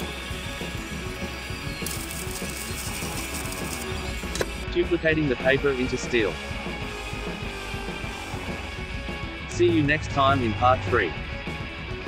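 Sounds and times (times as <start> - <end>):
arc welding crackle: 0.0 - 4.6
background music: 0.0 - 12.0.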